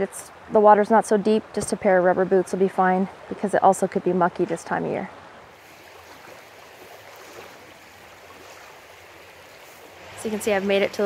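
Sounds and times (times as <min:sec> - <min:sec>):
shallow river flowing: 0:00.0 - 0:11.0.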